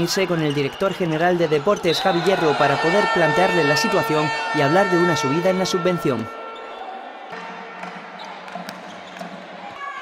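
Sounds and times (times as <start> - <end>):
murmur of players' voices: 0.0 - 10.0
sharp volleyball strikes echoing: 6.6 - 9.8.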